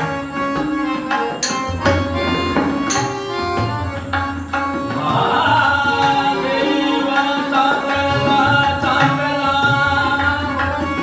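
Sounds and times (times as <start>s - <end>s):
harmonium chords: 0.0s - 11.0s
tabla strokes: 0.0s - 11.0s.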